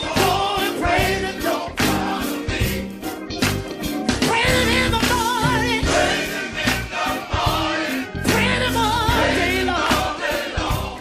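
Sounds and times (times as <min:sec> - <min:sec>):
band with bass and drums: 0:00.0 - 0:11.0
choir singing gospel: 0:00.0 - 0:11.0.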